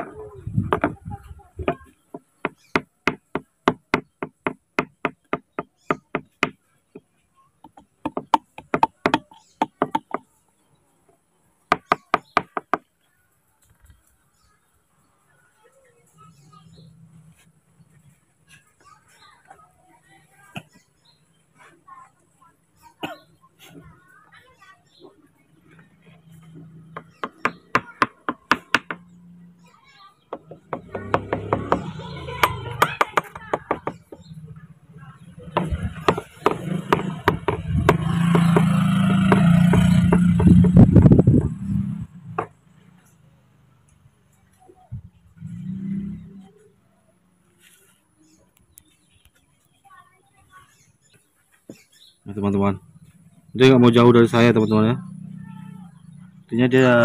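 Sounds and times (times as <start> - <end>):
sharp knocks: 26.9 - 29.0, 30.3 - 34.3, 35.5 - 41.6.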